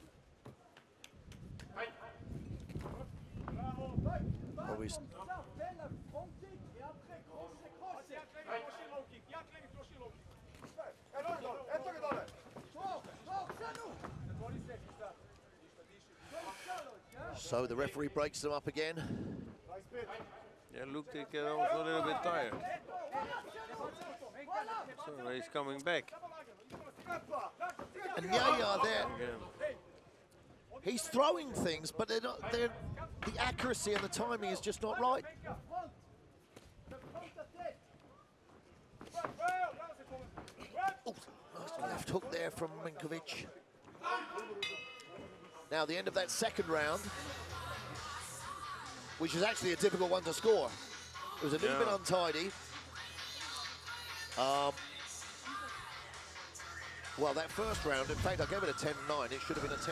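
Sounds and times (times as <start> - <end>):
arena background noise: 0.0 - 59.9.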